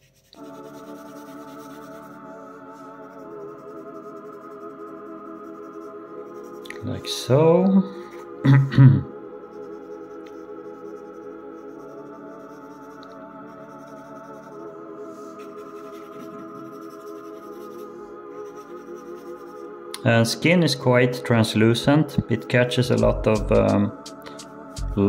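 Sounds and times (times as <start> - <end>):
pencil scratching on paper: 0.0 - 6.7, 9.4 - 19.7
ambient background music: 0.0 - 25.0
short vocal sound: 6.6 - 9.2.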